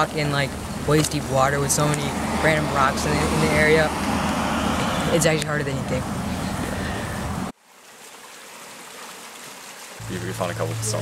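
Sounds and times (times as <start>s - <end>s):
loud outdoor noise: 0.0s - 7.6s
creek water rushing and splashing: 0.0s - 11.0s.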